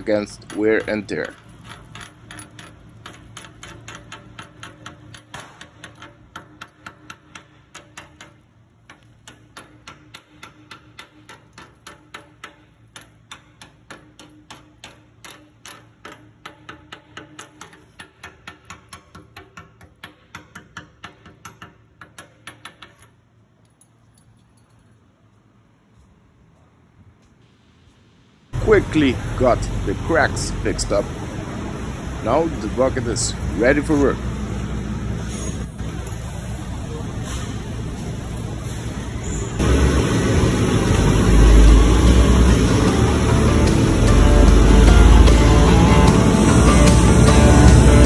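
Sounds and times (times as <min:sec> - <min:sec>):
chipping hammer tapping metal: 0:00.0 - 0:23.0.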